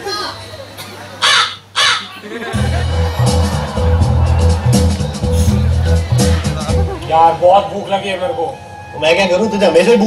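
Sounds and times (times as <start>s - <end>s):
faint voices: 2.0s - 8.8s.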